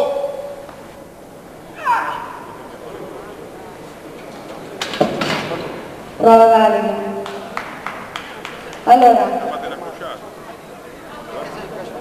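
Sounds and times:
loud shouts: 1.7 - 2.6.

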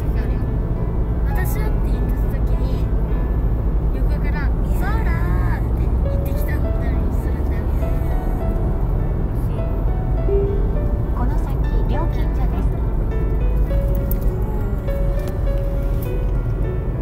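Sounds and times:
car road and engine rumble: 0.0 - 17.0
music: 0.0 - 17.0.

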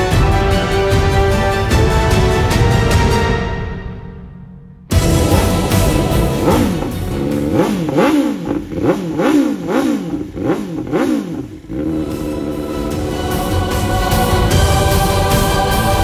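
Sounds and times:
steady sustained tones: 4.9 - 8.7, 11.8 - 16.0
motorcycle engine revving: 4.9 - 16.0.

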